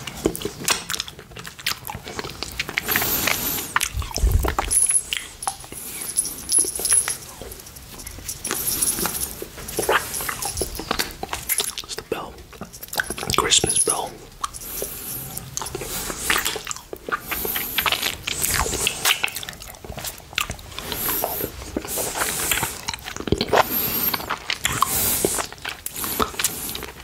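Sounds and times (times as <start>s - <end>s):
mouth licking and sucking candy: 0.0s - 27.0s.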